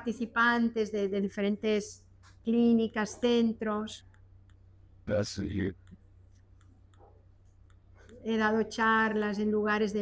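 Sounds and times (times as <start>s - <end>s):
faint clicks: 4.0s - 4.8s, 5.7s - 8.4s.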